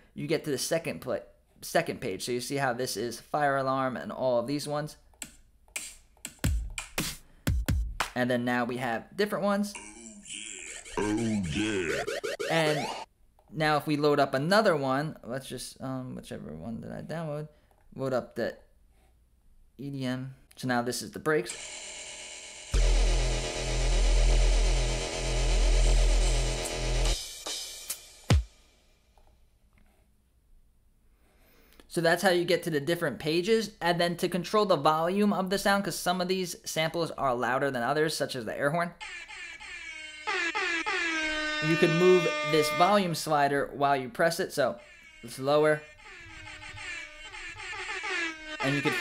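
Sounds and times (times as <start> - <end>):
held pitched tone: 9.7 - 13.1, 39.0 - 43.5, 44.6 - 49.0
electronic wobble bass: 9.8 - 13.1.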